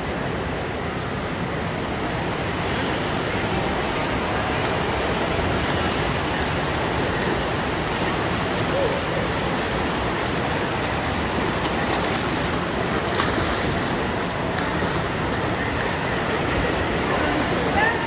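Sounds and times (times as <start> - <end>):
swimmers splashing in pool: 3.7 - 18.0.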